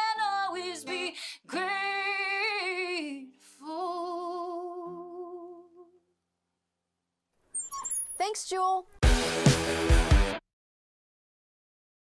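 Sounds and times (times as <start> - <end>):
woman singing with vibrato: 0.0 - 6.0.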